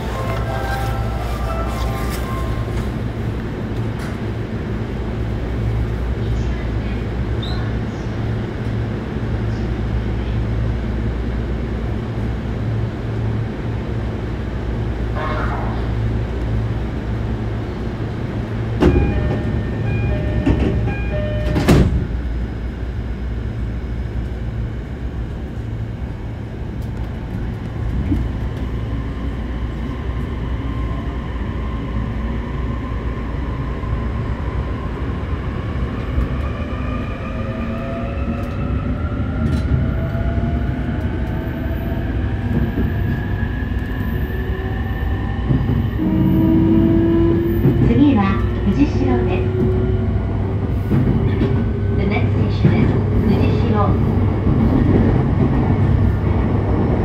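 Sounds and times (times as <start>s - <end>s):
train doors shutting: 0.0s - 4.4s, 18.6s - 22.4s
train interior low hum: 0.0s - 57.0s
door chime: 18.8s - 21.8s.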